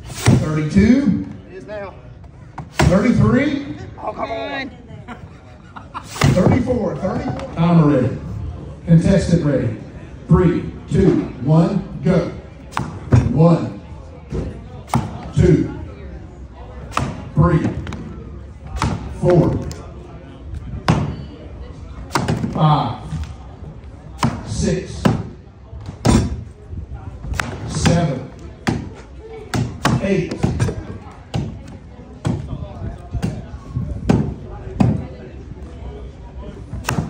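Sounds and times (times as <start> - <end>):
axes chopping wooden logs: 16.9 - 17.2, 22.1 - 22.6, 29.5 - 31.5.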